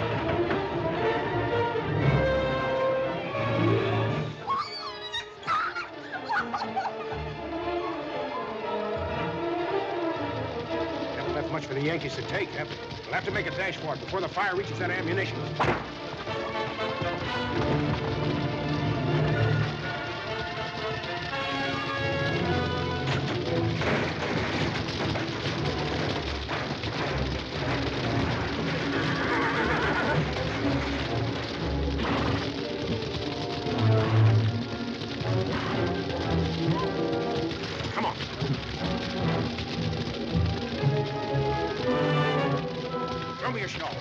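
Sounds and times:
film score music: 0:00.0 - 0:44.0
fire crackling and rumbling: 0:00.0 - 0:44.0.

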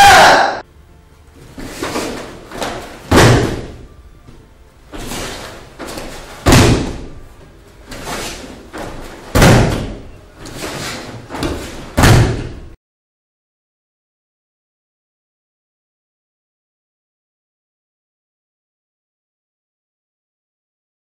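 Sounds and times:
bodies slamming onto mats: 0:01.6 - 0:03.9, 0:04.9 - 0:07.2, 0:07.9 - 0:12.7.

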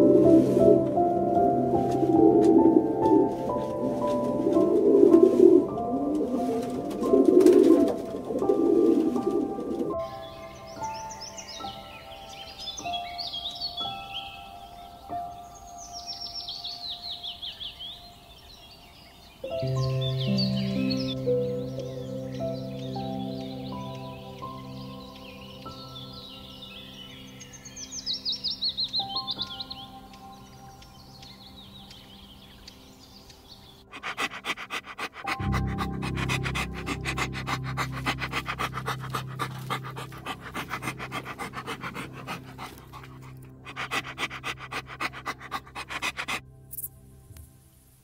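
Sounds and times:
soft background music: 0:00.0 - 0:48.0
dog panting: 0:33.9 - 0:46.4.

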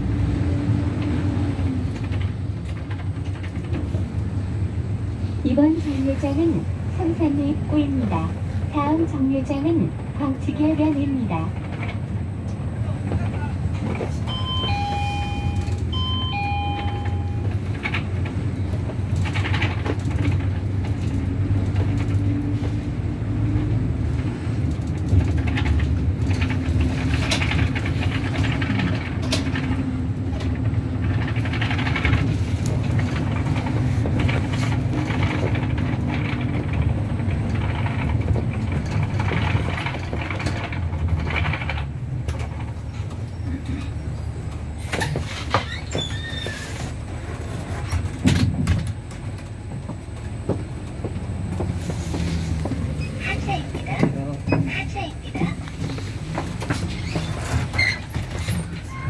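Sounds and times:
bus engine drone: 0:00.0 - 0:59.0
road noise: 0:00.0 - 0:59.0
two-note electronic chime: 0:14.3 - 0:17.4.

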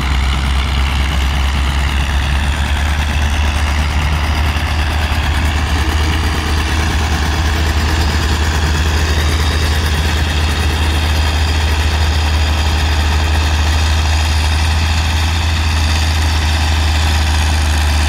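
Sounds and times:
distant crawler tractor running: 0:00.0 - 0:18.0
tractor engine passing by: 0:00.0 - 0:18.0.

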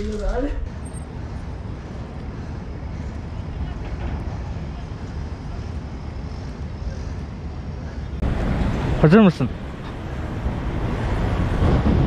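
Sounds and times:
outdoor waterfront noise: 0:00.0 - 0:12.0
wind buffeting microphone: 0:00.0 - 0:12.0.

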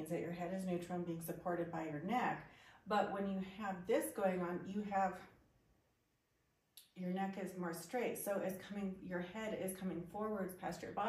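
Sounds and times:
woman speaking: 0:00.0 - 0:05.4, 0:06.8 - 0:11.0.

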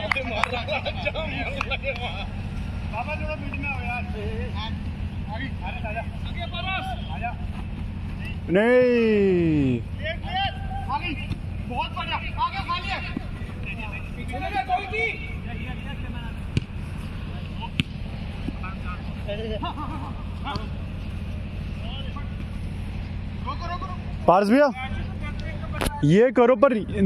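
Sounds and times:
footballers shouting: 0:00.0 - 0:25.7
ball being kicked: 0:16.4 - 0:18.6.

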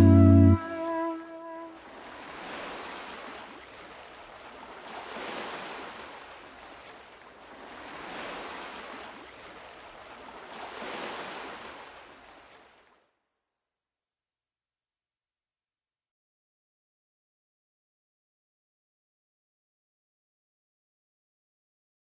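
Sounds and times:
held note of a song: 0:00.0 - 0:01.8
ocean waves breaking: 0:00.0 - 0:13.0.

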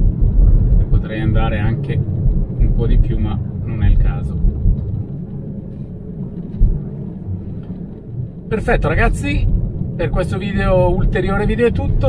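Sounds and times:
road and tyre rumble: 0:00.0 - 0:12.0
brief low thump: 0:05.7 - 0:06.9.

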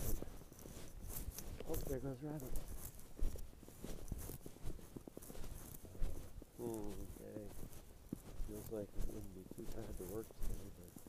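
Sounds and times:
footsteps in snow: 0:00.0 - 0:11.0.

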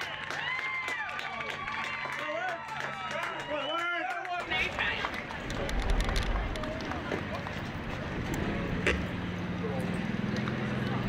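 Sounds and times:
distant indistinct voices: 0:00.9 - 0:11.0
wind rumbling on microphone: 0:05.1 - 0:08.5.

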